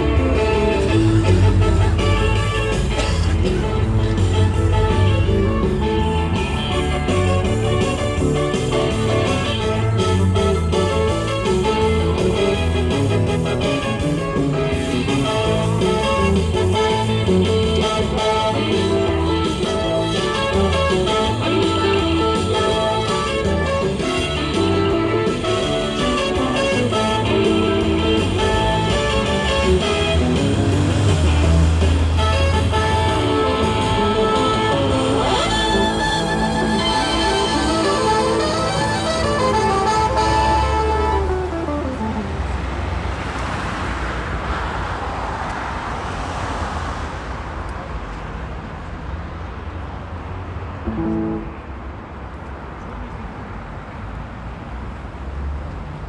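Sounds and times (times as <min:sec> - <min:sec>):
guitar music through amplifier: 0:00.0 - 0:42.6, 0:50.8 - 0:51.9
traffic: 0:00.0 - 0:56.0.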